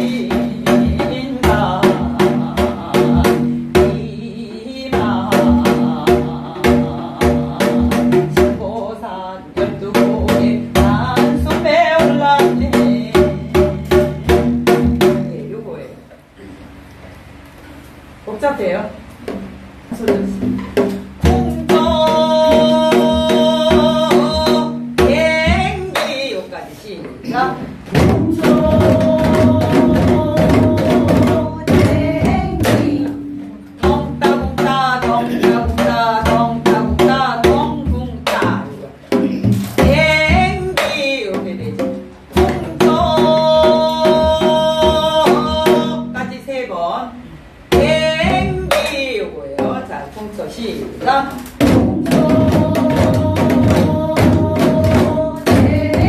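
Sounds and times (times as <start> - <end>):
woman singing folk song: 0.0 - 15.5, 21.2 - 38.9, 39.7 - 47.0, 47.7 - 49.9, 50.9 - 56.0
hourglass drum playing fast rhythm: 28.0 - 33.0.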